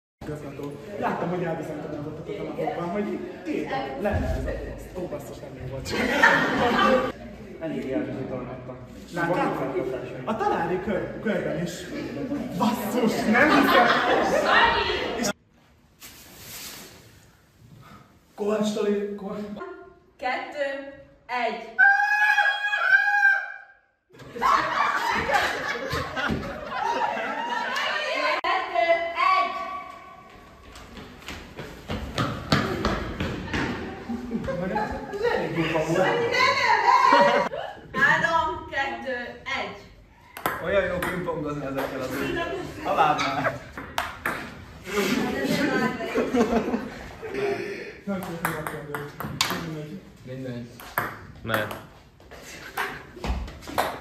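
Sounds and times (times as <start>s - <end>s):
person shrieking: 21.8s - 23.7s.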